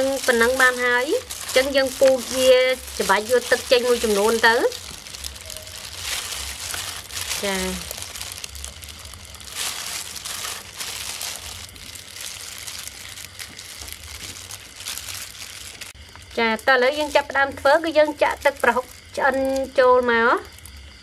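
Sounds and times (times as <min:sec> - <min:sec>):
hand squeezing raw meat: 0:00.0 - 0:16.0
plastic glove crinkling: 0:00.0 - 0:16.0, 0:16.9 - 0:19.7.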